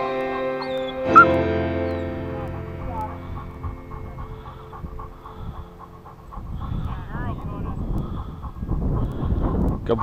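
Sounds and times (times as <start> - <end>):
dog panting: 2.1 - 10.0.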